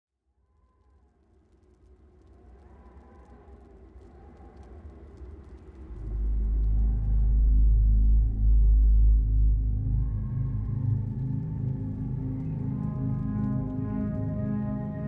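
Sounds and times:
slow gliding tones: 2.3s - 15.0s
deep rumble: 5.4s - 15.0s
ambient drone: 5.6s - 15.0s.

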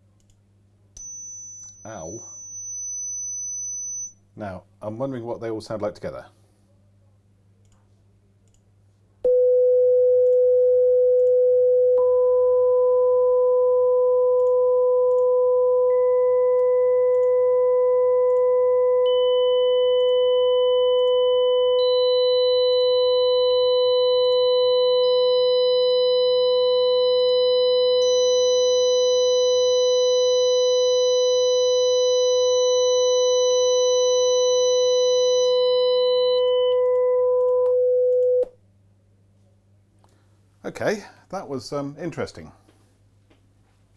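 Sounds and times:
sine wave test tones: 0.9s - 4.2s, 9.2s - 38.6s.

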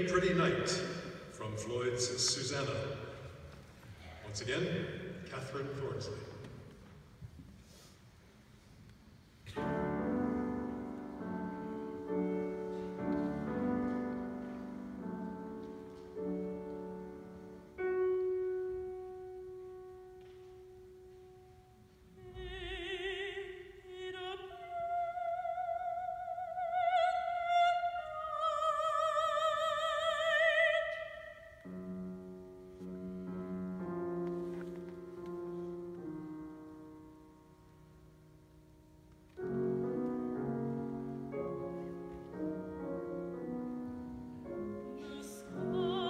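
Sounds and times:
grand piano playing slow chords: 9.4s - 24.3s, 31.6s - 46.0s
soprano singing with vibrato: 22.0s - 31.6s, 44.5s - 46.0s.

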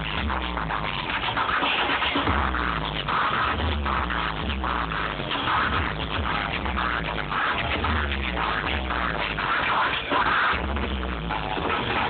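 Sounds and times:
electronic music with pulsing bass: 0.0s - 12.0s
turntable scratching: 0.0s - 12.0s.

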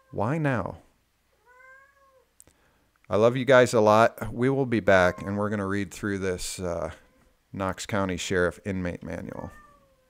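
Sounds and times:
cat meowing faintly: 0.0s - 0.3s, 1.4s - 2.3s, 4.9s - 5.4s, 9.4s - 10.0s.

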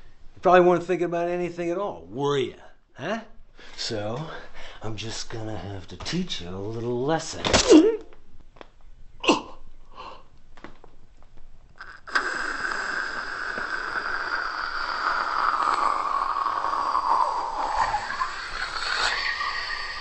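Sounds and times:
air hissing from inflatable doll: 11.8s - 20.0s.

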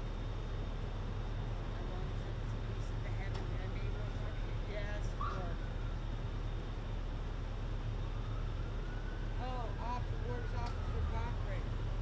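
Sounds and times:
distant voices: 0.6s - 12.0s.

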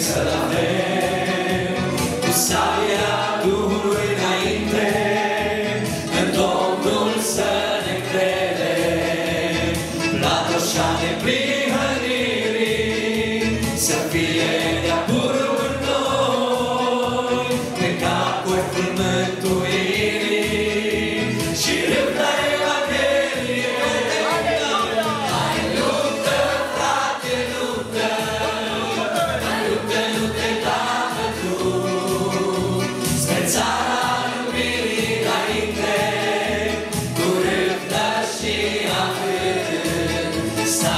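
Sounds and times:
group singing worship song: 0.0s - 40.9s.

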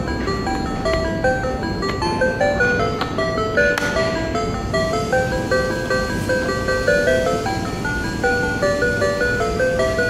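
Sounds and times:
electronic toy melody: 0.0s - 10.0s.

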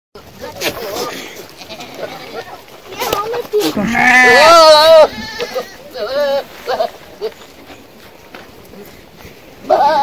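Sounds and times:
goats bleating: 0.6s - 2.6s, 3.6s - 7.4s, 9.6s - 10.0s.

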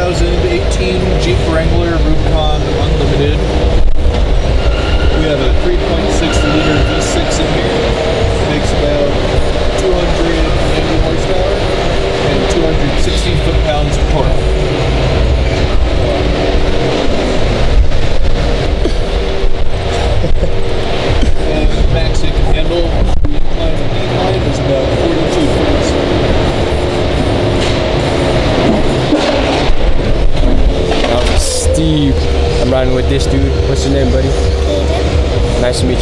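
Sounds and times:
car engine low rumble: 0.0s - 36.0s
crowd murmuring: 0.0s - 36.0s.

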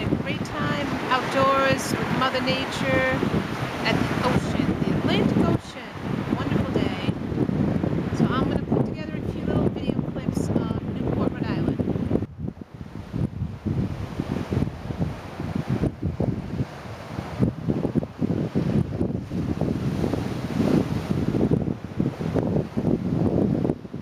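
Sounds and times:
surf washing against rocks: 0.0s - 24.0s
wind gusting on microphone: 0.0s - 24.0s.

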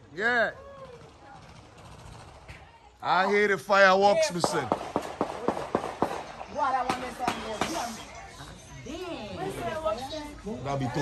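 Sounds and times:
voices: 0.0s - 11.0s
fireworks cracking: 4.1s - 8.2s.

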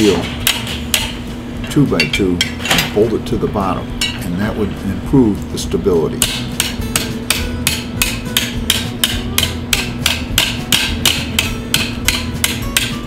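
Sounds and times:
hammer striking metal anvil: 0.0s - 1.2s, 6.2s - 13.0s.

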